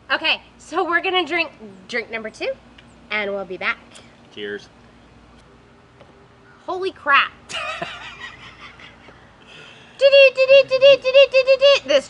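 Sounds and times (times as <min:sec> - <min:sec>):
high-pitched cackling laugh: 0:07.5 - 0:09.2.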